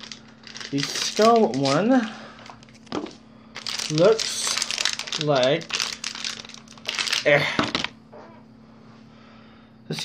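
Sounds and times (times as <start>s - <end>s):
plastic packaging crinkling: 0.0s - 8.0s
faint hum: 0.0s - 10.0s.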